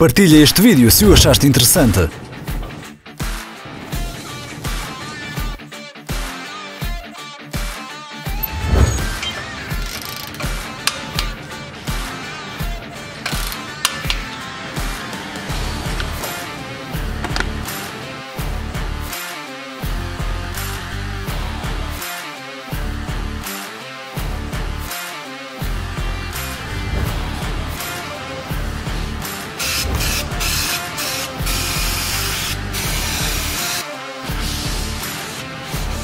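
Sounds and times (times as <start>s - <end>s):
background music with steady beat: 0.0s - 36.0s
torque wrench ratchet clicking: 9.8s - 11.3s, 13.3s - 14.2s
aerosol spray bursts: 29.6s - 33.8s.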